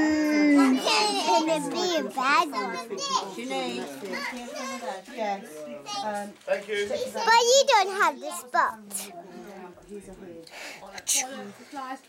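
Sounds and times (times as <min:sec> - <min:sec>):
children's voices: 0:00.0 - 0:06.3, 0:06.9 - 0:09.2
overlapping chatter: 0:00.0 - 0:12.0.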